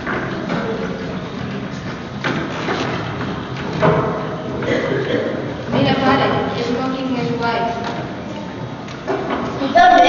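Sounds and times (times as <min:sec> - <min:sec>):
chairs knocking on wooden floor: 0:00.0 - 0:04.8, 0:09.0 - 0:09.6
background hubbub: 0:00.0 - 0:10.0.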